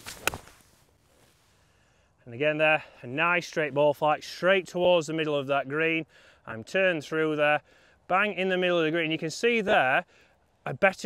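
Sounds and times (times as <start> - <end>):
golf club swish: 0.0 - 1.4.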